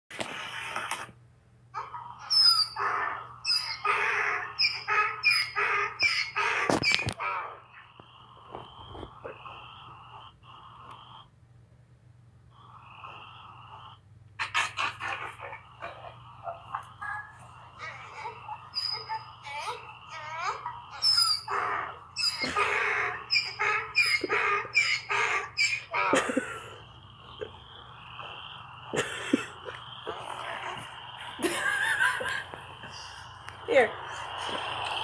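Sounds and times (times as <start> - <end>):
dog whining: 1.8 - 7.8, 14.4 - 26.4.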